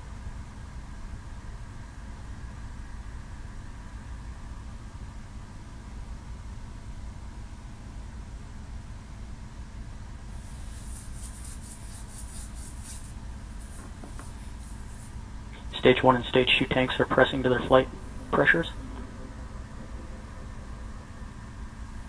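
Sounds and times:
hiss: 10.4s - 15.2s
low rumble: 10.4s - 22.0s.

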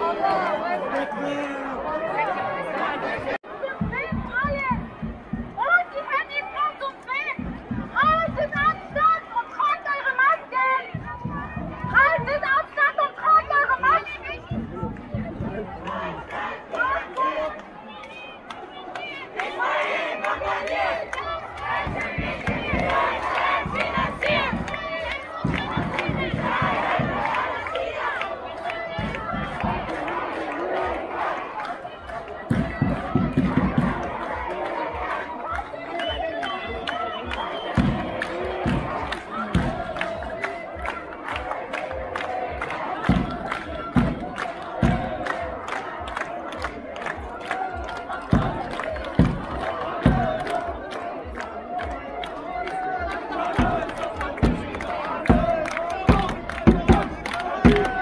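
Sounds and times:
crowd shouting slogans: 0.0s - 58.0s
rhythmic hand-clapping: 3.4s - 58.0s.

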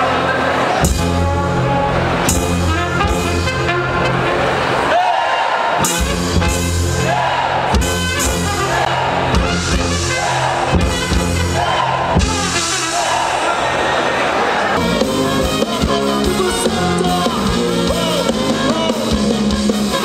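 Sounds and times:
tuba bass line: 0.0s - 4.9s, 5.8s - 13.4s, 14.8s - 20.0s
trumpet: 0.0s - 14.1s, 14.7s - 20.0s
saxophone: 0.7s - 4.8s, 5.8s - 13.4s, 14.8s - 20.0s
drum kit: 0.8s - 4.3s, 5.8s - 13.0s, 14.8s - 20.0s.

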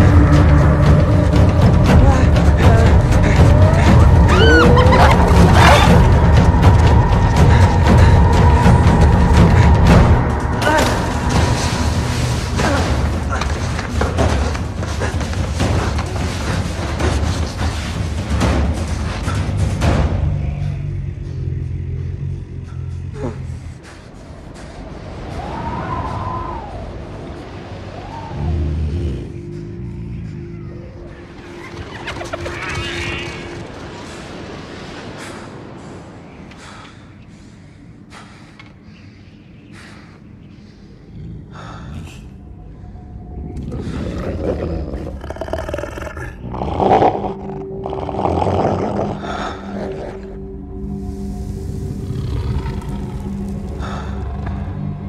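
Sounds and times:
lion roaring and growling: 0.0s - 17.3s, 43.4s - 50.6s, 51.4s - 54.4s
wolf growling low: 43.4s - 50.5s, 51.8s - 54.0s.

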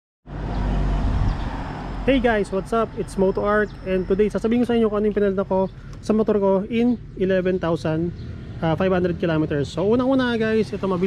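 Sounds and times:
vehicle engine humming: 0.3s - 11.0s.

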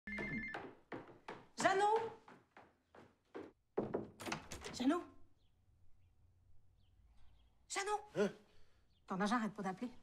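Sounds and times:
footsteps on wooden stairs: 0.1s - 4.7s
knock on door: 0.1s - 4.8s.

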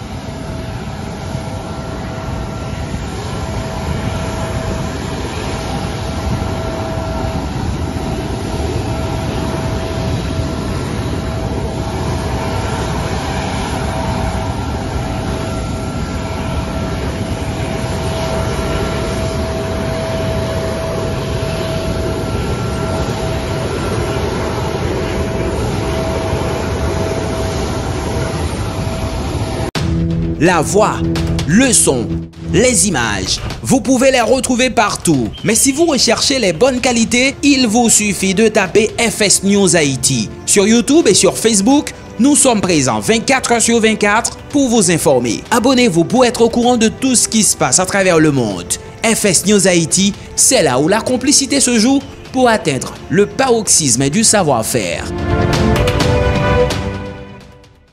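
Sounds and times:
high whine: 0.0s - 57.9s
jet engine rushing: 0.0s - 57.9s.

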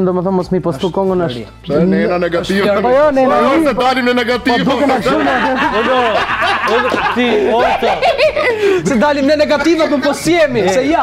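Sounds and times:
men speaking: 0.0s - 11.0s
men laughing: 3.4s - 10.5s.

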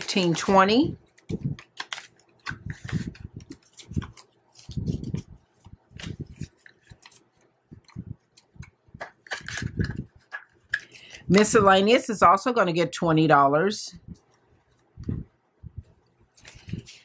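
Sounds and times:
paper banknotes rustling: 0.0s - 10.4s, 16.3s - 17.0s.

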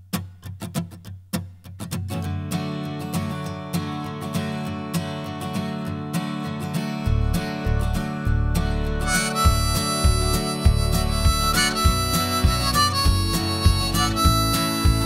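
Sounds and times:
strummed acoustic guitar: 0.0s - 15.0s
held lead melody line: 6.1s - 15.0s
bass and drums: 7.1s - 15.0s.

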